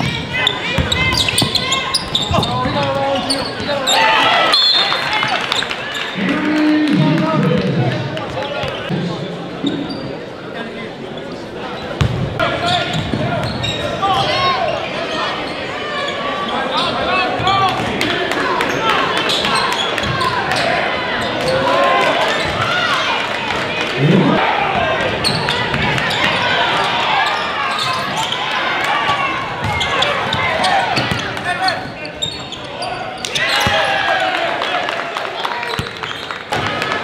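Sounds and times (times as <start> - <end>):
sneakers squeaking: 0.0 - 6.1, 9.6 - 10.2, 11.8 - 17.6, 25.2 - 26.5, 27.1 - 34.0, 35.7 - 36.4
crowd chatter: 0.0 - 37.0.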